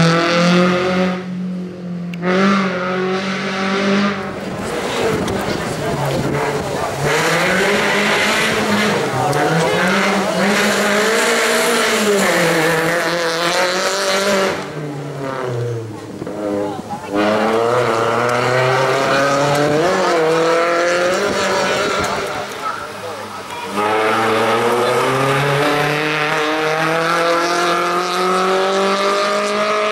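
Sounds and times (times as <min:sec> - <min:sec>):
race car engine revving: 0:00.0 - 0:29.9.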